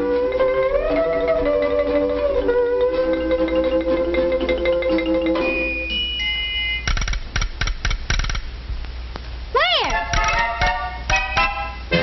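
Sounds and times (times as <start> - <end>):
sharp knocks: 6.9 - 8.5, 10.0 - 11.3.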